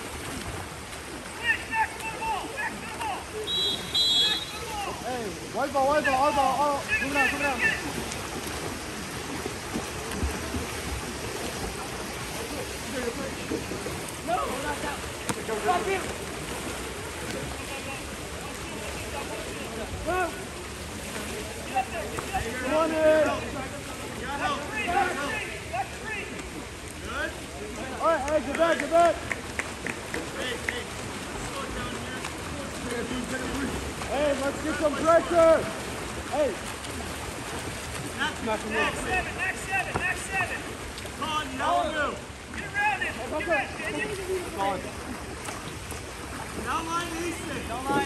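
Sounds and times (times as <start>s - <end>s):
swimmers splashing in pool: 0.0s - 48.0s
people shouting: 1.4s - 5.0s, 6.2s - 8.0s, 24.4s - 26.3s.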